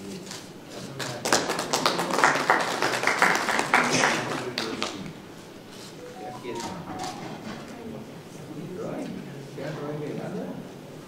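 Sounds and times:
audience clapping: 0.9s - 5.1s, 6.1s - 7.5s.

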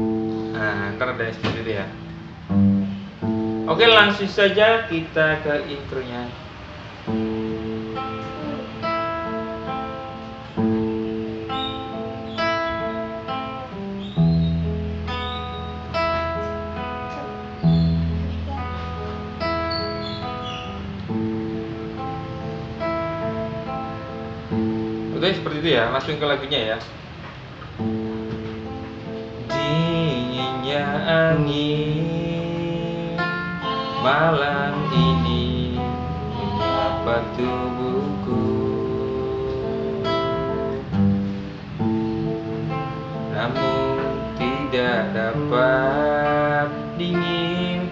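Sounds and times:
fingerpicked acoustic guitar: 0.0s - 5.7s, 6.3s - 47.9s.

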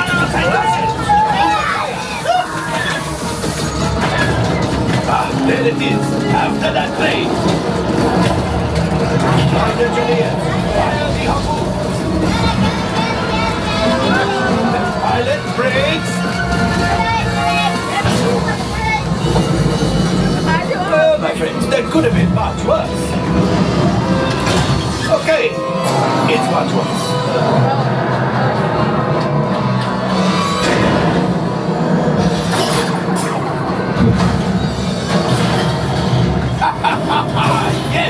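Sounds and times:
voices: 0.0s - 23.3s
low rumble of starship engines: 0.0s - 38.0s
music: 0.0s - 38.0s.

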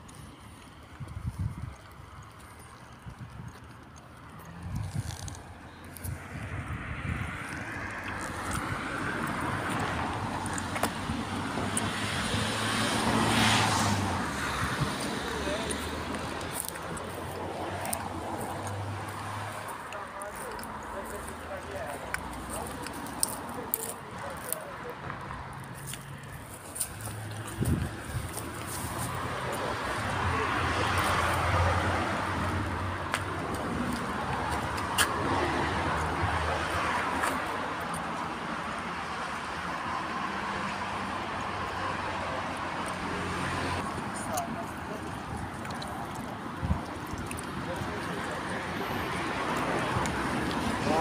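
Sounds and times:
passing road traffic: 0.0s - 51.0s.

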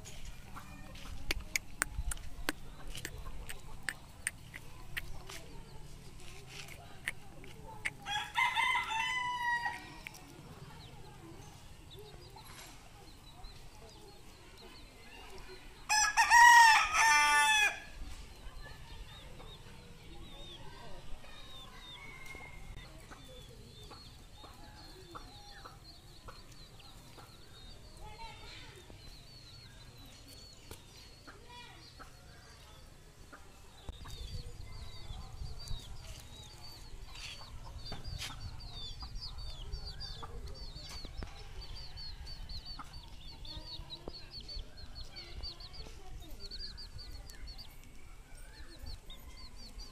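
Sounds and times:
chicks peeping: 0.0s - 17.4s, 18.0s - 49.9s
hens clucking: 0.4s - 9.2s.

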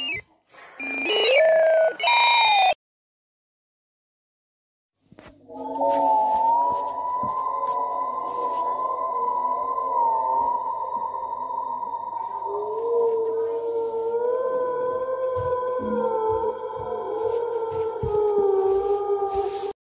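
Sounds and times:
eerie wavering drone: 5.4s - 19.7s.

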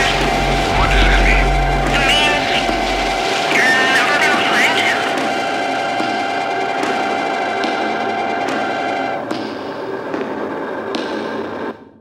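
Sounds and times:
deep bass: 0.0s - 3.8s
droning tone: 0.0s - 10.8s.

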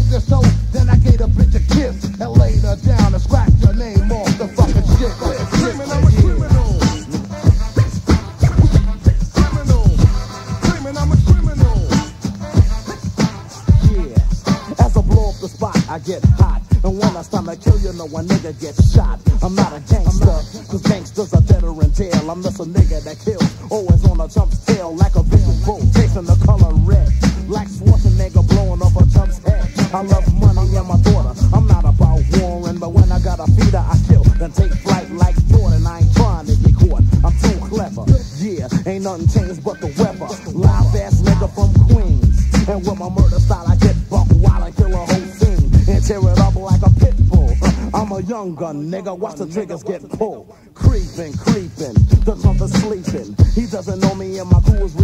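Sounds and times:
man rapping over a beat: 0.0s - 55.0s.

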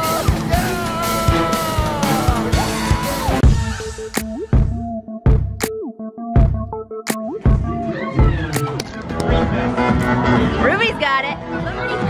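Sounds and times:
electronic music with drum beat: 0.0s - 10.3s.

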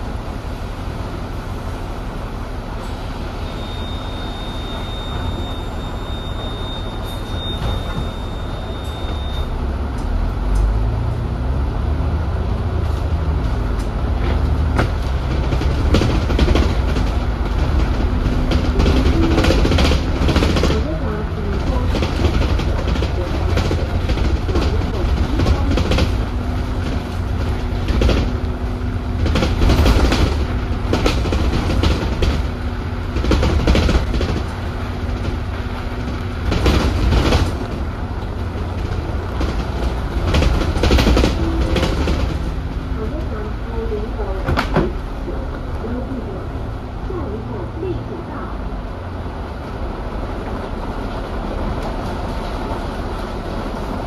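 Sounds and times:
bus drivetrain rumble: 0.0s - 54.0s
bodywork rattles and knocks: 12.8s - 43.0s.

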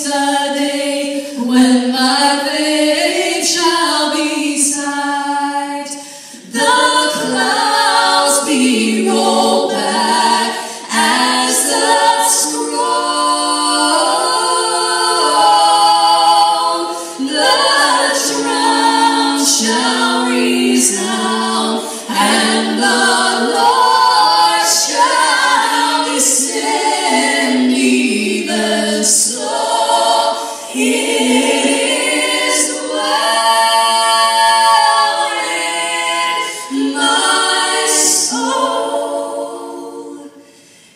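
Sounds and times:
women singing a cappella: 0.0s - 40.9s.

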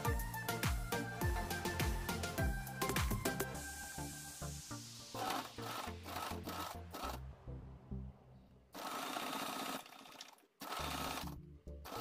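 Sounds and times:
sewing machine stitching: 5.2s - 7.2s, 8.7s - 12.0s.

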